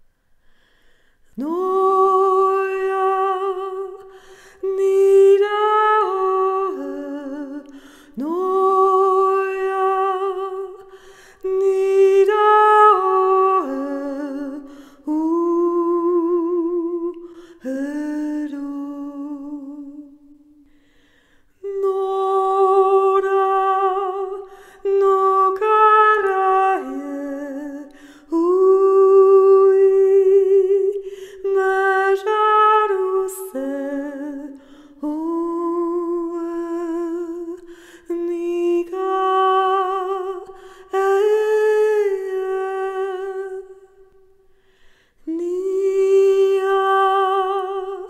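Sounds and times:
singer breathing: 0:00.4 - 0:01.3, 0:04.1 - 0:04.6, 0:07.7 - 0:08.2, 0:10.9 - 0:11.4, 0:20.6 - 0:21.6, 0:24.5 - 0:24.8, 0:27.9 - 0:28.3, 0:31.0 - 0:31.4, 0:37.6 - 0:38.1, 0:44.5 - 0:45.2
person singing wordless melody: 0:01.3 - 0:20.7, 0:21.6 - 0:44.4, 0:45.2 - 0:48.0.

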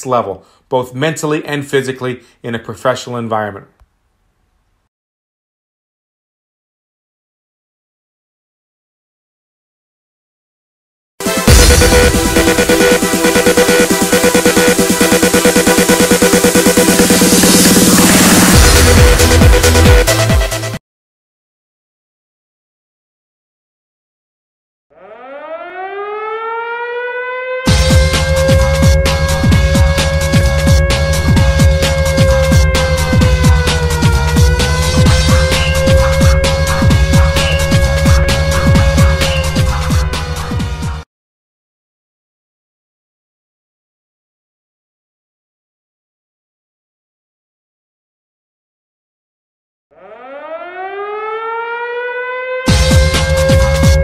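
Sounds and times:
electronic music with heavy beat: 0:11.2 - 0:20.8, 0:27.7 - 0:41.0, 0:52.7 - 0:54.0
rising siren-like tone: 0:11.4 - 0:20.2, 0:24.9 - 0:41.0, 0:49.9 - 0:54.0.

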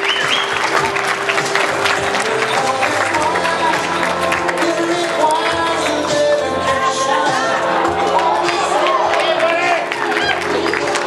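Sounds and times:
crowd applauding: 0:00.0 - 0:11.0
music over sound system: 0:00.0 - 0:11.0.

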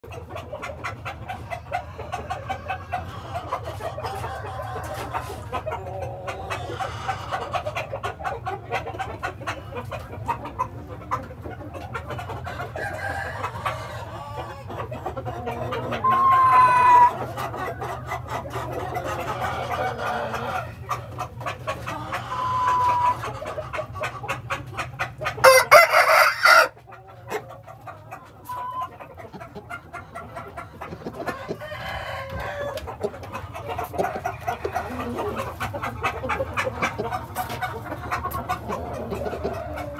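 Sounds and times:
hens clucking: 0:00.0 - 0:39.9
harsh chicken call: 0:00.3 - 0:07.9, 0:12.4 - 0:24.6, 0:25.2 - 0:26.8, 0:28.1 - 0:39.9
rooster crowing: 0:16.0 - 0:17.2, 0:25.4 - 0:26.8, 0:31.4 - 0:32.8.

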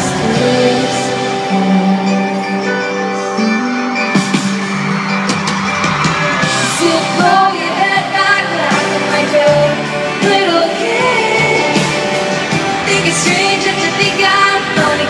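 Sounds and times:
live pop song over sound system: 0:00.0 - 0:15.0.

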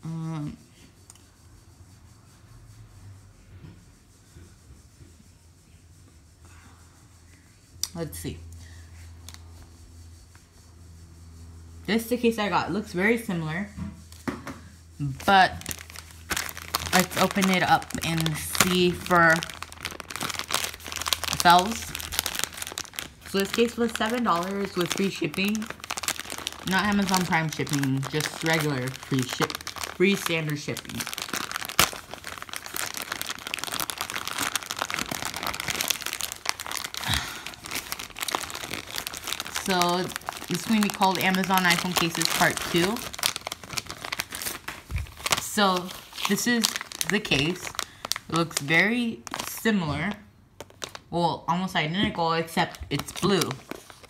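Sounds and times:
steady low hum: 0:00.0 - 0:54.0
plastic packaging crinkling: 0:15.0 - 0:51.1, 0:52.1 - 0:54.0
hand rustling plastic bag: 0:15.1 - 0:49.6, 0:50.6 - 0:51.1, 0:52.5 - 0:54.0.

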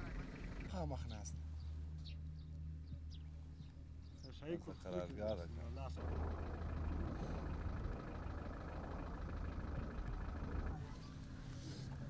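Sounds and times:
engine rumble: 0:00.0 - 0:00.7, 0:05.4 - 0:12.0.

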